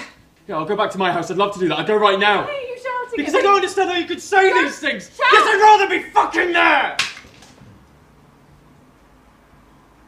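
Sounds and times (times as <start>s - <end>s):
person shouting: 4.3s - 7.0s.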